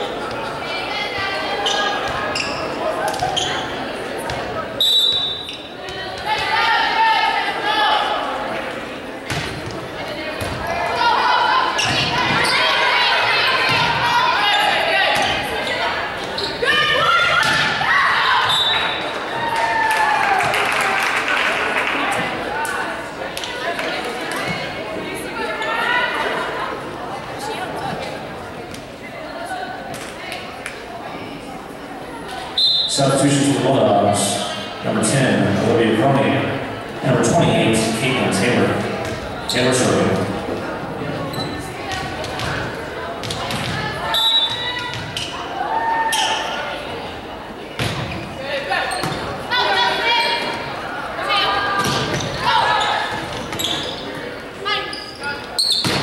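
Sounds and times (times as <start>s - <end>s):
voices calling and chattering: 0.0s - 56.0s
players shouting: 5.3s - 8.5s, 10.6s - 22.5s, 48.6s - 53.4s.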